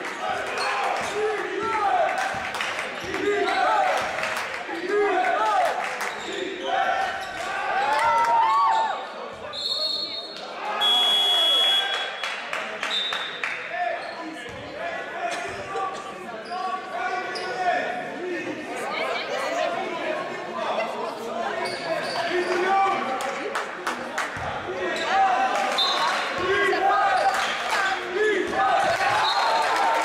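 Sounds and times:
referee whistle blasts: 9.5s - 13.3s.

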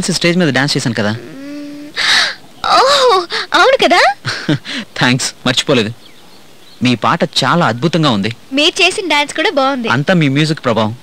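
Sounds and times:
woman humming: 1.1s - 3.4s
woman's breathy exclamation: 1.2s - 3.6s.

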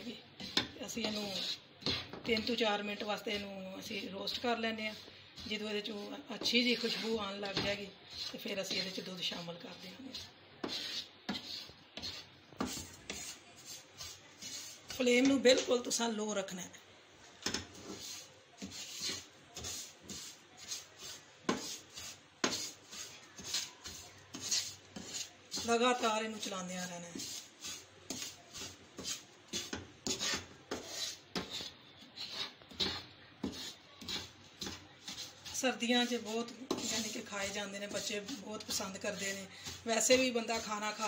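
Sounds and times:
wooden spatula scraping a pan: 0.0s - 16.0s, 17.4s - 41.0s.

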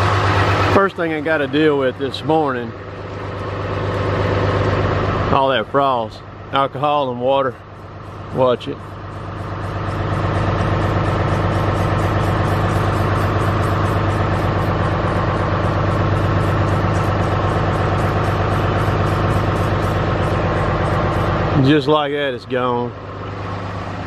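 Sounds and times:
truck engine idling: 0.0s - 24.0s.

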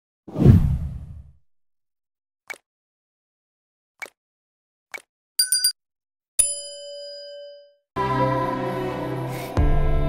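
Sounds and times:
deep whoosh: 0.3s - 1.3s.

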